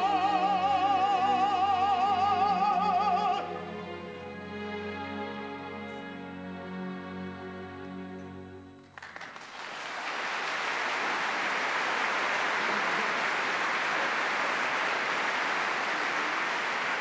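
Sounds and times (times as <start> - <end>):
audience applauding: 8.8 - 17.0.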